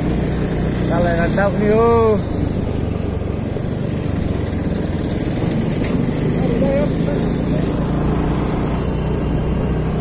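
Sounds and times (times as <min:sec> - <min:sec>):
scooter engine rumble: 0:00.0 - 0:10.0.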